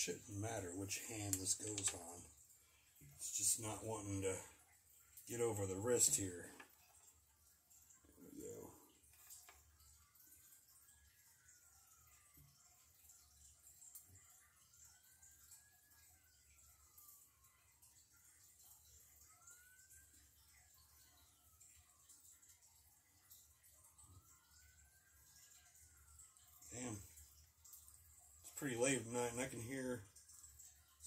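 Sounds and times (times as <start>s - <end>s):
distant emergency siren wailing: 23.2s - 27.2s.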